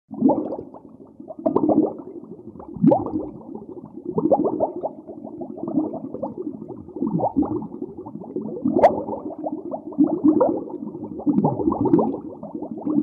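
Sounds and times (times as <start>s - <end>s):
underwater bubbling and gurgling: 0.1s - 13.0s.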